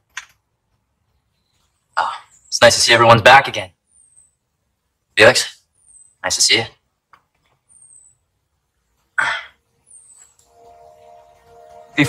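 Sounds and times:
soft background music: 0:10.4 - 0:12.0.

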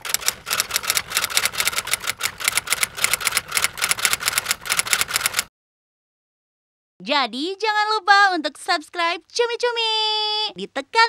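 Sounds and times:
typewriter key clicks: 0:00.0 - 0:05.5.

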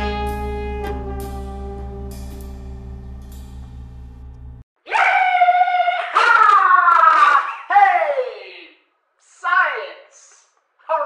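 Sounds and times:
jazz music: 0:00.0 - 0:04.6.

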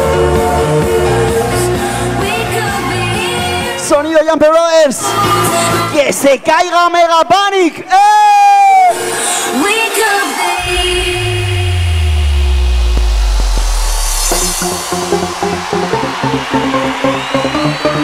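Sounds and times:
electronic dance music: 0:09.0 - 0:18.0
deep bass sweep falling: 0:10.6 - 0:17.3
steady dance beat: 0:10.6 - 0:18.0.

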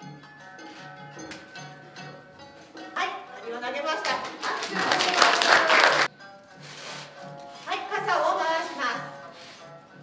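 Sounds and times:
background music: 0:00.0 - 0:10.0
people clapping: 0:04.0 - 0:06.1.

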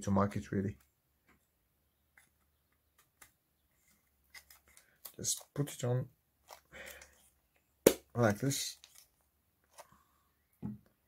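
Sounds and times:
plastic parts rubbing: 0:02.2 - 0:05.7.

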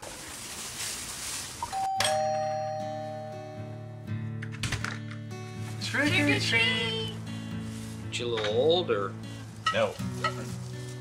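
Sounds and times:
two-note doorbell chime: 0:01.7 - 0:04.1
music playing: 0:02.1 - 0:11.0.

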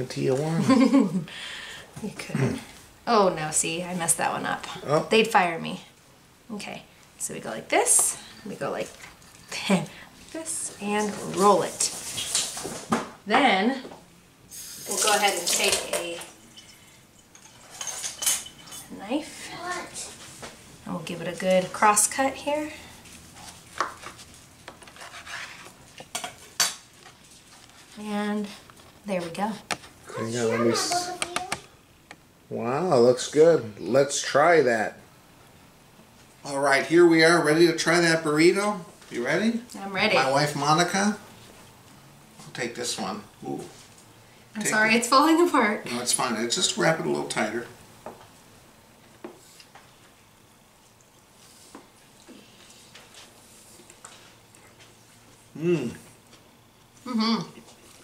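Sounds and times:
quiet room hiss: 0:00.0 - 0:58.0
tortilla wrap rustling: 0:11.0 - 0:12.9, 0:22.9 - 0:31.0
knife sawing through burrito: 0:25.0 - 0:25.8
people chewing food: 0:49.0 - 0:58.0.

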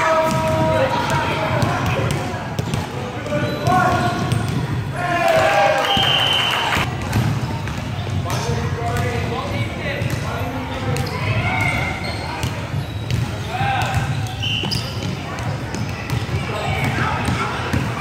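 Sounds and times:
basketballs bouncing on wooden floor: 0:00.2 - 0:05.6, 0:06.8 - 0:09.3, 0:10.0 - 0:18.0
children shouting and chattering: 0:14.4 - 0:18.0.

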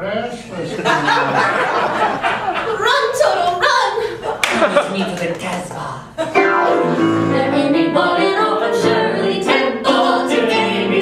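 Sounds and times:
sharp hand claps: 0:04.4 - 0:05.7
people singing: 0:06.4 - 0:11.0.

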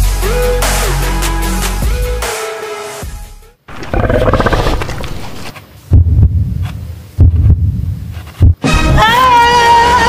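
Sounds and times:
growling roar: 0:03.7 - 0:05.5.

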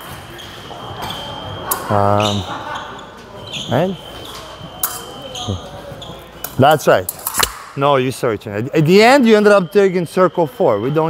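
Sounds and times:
background chatter: 0:00.0 - 0:11.0
sharp blade click: 0:07.1 - 0:07.7.

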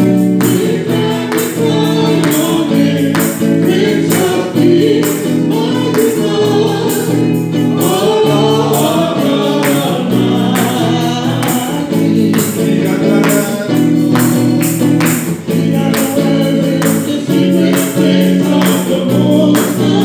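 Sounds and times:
electric guitar: 0:00.0 - 0:20.0
steady beat: 0:00.0 - 0:20.0.

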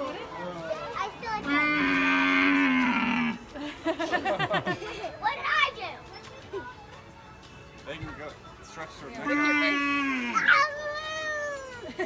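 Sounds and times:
high-pitched vocal cries: 0:09.2 - 0:12.0.

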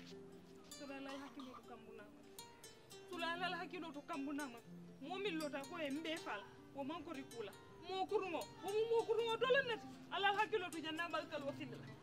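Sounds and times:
background music: 0:00.0 - 0:12.0
woman talking: 0:00.8 - 0:02.1, 0:03.2 - 0:11.8.

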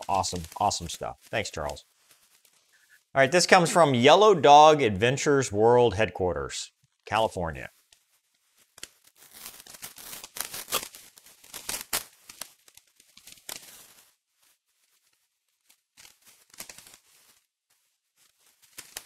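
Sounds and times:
paper rustling: 0:00.0 - 0:02.7, 0:15.6 - 0:17.4, 0:18.2 - 0:19.0
paper envelope tearing: 0:08.8 - 0:12.5, 0:16.0 - 0:17.0.

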